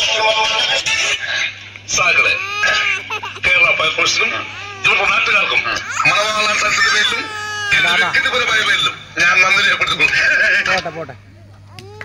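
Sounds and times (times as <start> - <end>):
steady low hum: 0.0 - 12.0
children calling out: 5.8 - 8.2.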